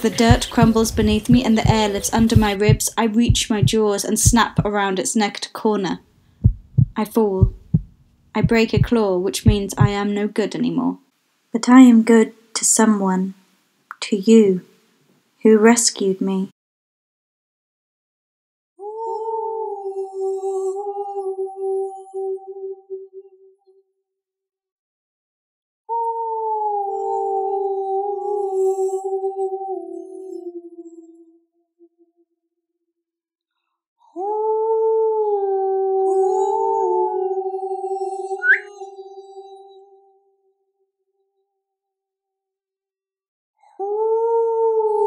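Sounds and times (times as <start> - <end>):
sharp rising squeak: 38.4 - 38.7.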